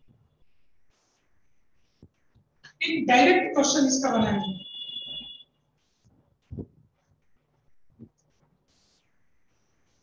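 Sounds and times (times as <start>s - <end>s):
high-pitched beep tone: 4.2s - 5.4s
soft low thump: 6.5s - 6.8s.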